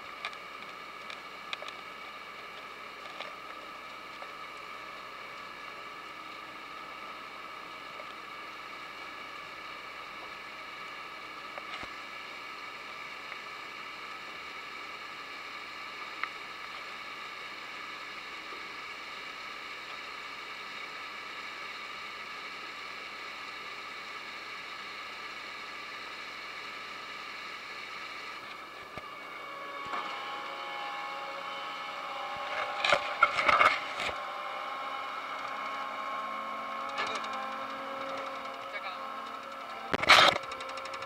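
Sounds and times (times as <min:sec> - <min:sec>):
harvester conveyor whine: 0:00.0 - 0:41.0.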